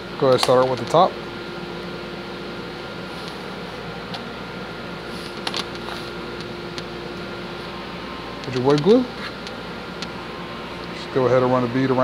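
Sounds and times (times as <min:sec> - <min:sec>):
background hum: 0:00.0 - 0:12.0.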